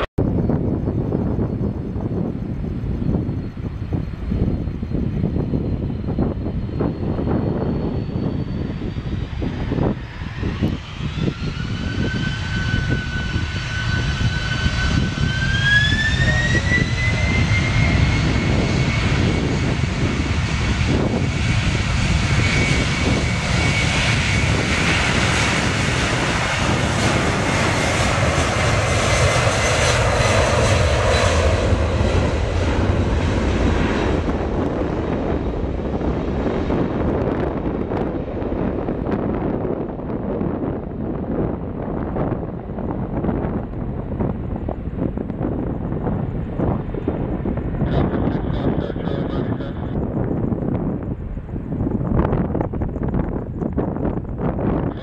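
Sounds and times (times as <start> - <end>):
jet engine roar: 0.0 - 55.0
jet engines spooling up: 3.9 - 39.6.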